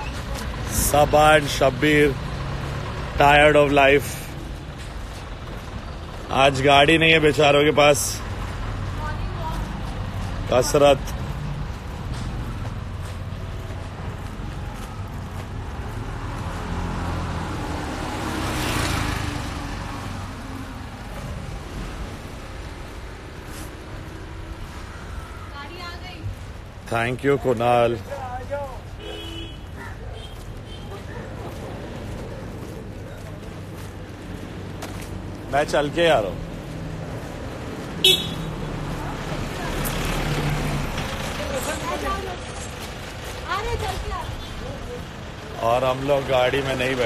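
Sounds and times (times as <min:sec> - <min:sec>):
low traffic rumble: 0:00.0 - 0:47.0
vehicle passing close by: 0:08.2 - 0:25.5, 0:30.4 - 0:47.0.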